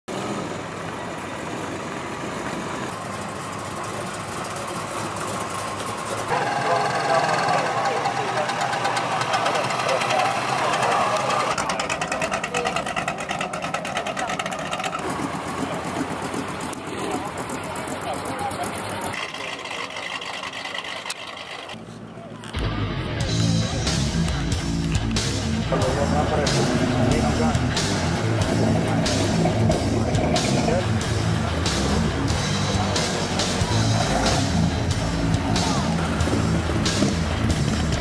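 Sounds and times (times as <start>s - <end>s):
old cars driving slowly past: 0.1s - 38.0s
crowd voices: 0.7s - 38.0s.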